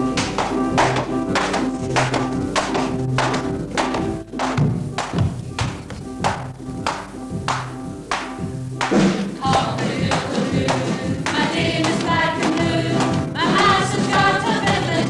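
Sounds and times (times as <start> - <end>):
live band playing: 0.0 - 9.5
struck percussion beat: 0.1 - 15.0
group of voices singing: 9.2 - 15.0.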